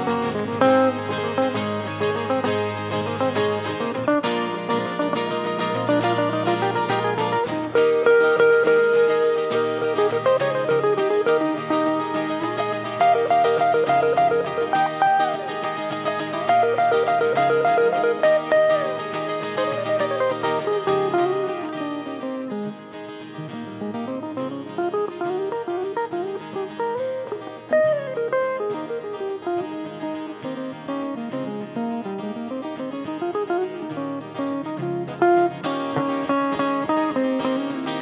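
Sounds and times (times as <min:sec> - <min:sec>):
jazz electric guitar: 0:00.0 - 0:38.0.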